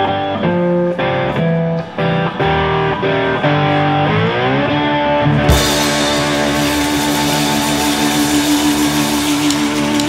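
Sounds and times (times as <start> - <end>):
blues band playing: 0.0 - 10.0
electric guitar long held note: 0.0 - 10.0.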